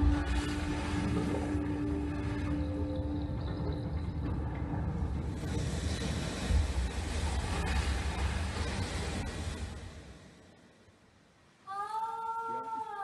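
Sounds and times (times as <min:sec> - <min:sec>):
low rumbling ambient music: 0:00.0 - 0:10.4.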